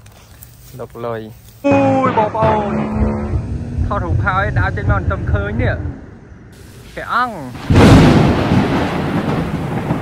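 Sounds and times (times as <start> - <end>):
loud rumble: 1.7 - 6.6.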